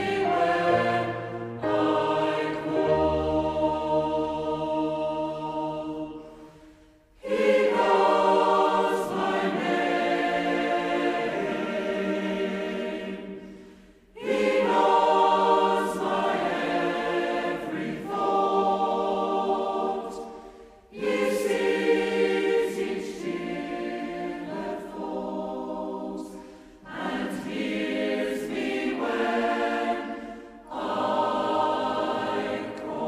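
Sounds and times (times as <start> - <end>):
mixed choir singing slowly: 0.0 - 33.0.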